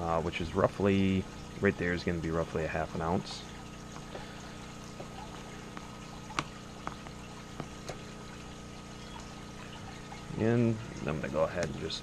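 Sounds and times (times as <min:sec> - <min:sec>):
aquarium filters humming: 0:00.0 - 0:12.0.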